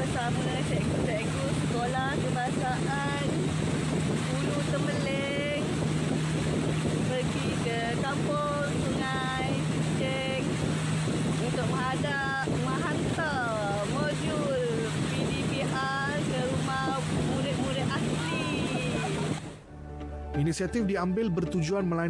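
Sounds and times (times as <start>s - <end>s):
woman speaking: 0.0s - 3.4s, 4.2s - 5.7s, 7.0s - 10.5s, 11.4s - 19.4s
rush of wind and water: 0.0s - 19.7s
boat motor humming: 0.0s - 20.4s.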